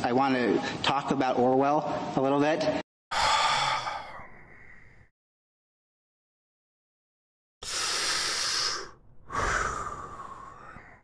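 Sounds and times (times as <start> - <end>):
man breathing in deeply: 3.1 - 5.1, 7.6 - 11.0.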